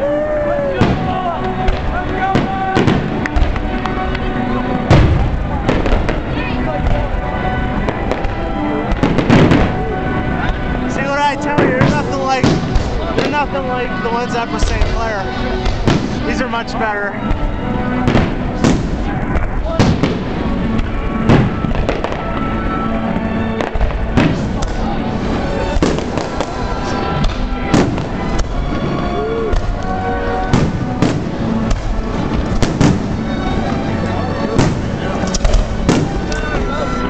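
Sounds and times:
music playing: 0:00.0 - 0:37.0
firework shells bursting: 0:07.8 - 0:09.9, 0:10.5 - 0:22.6, 0:23.6 - 0:36.8.

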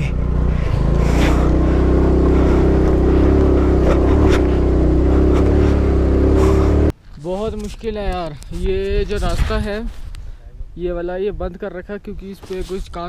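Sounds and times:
scooter engine running under load: 0:00.0 - 0:06.9
wind and road noise: 0:00.0 - 0:13.0.

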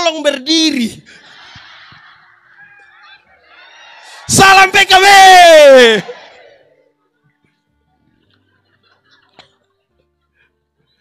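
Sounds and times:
audience laughing: 0:01.0 - 0:04.3, 0:08.1 - 0:10.6.

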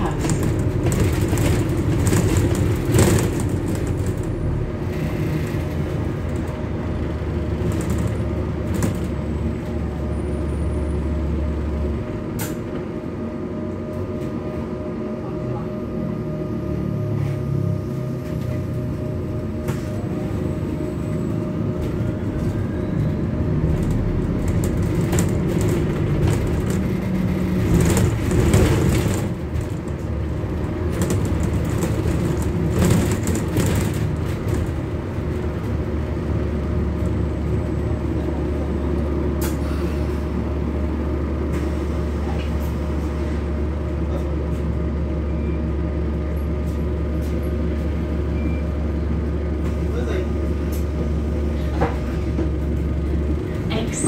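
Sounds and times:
bus drivetrain humming: 0:00.0 - 0:54.0.

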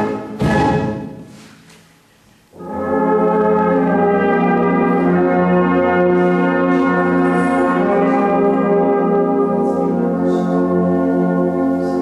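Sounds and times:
brass band holding a sustained chord: 0:02.5 - 0:12.0.

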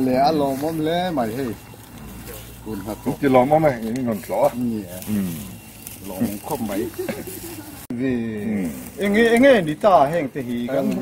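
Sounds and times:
man talking: 0:00.0 - 0:01.6, 0:02.6 - 0:07.2, 0:07.9 - 0:11.0.

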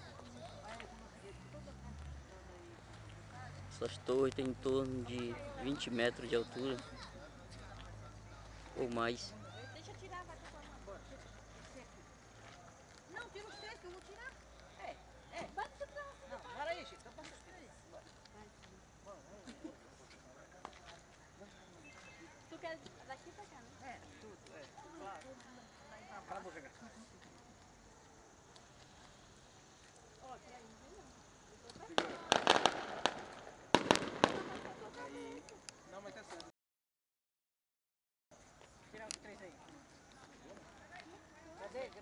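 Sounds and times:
faint indistinct voices: 0:05.0 - 0:36.5
firecrackers banging: 0:31.9 - 0:35.4.

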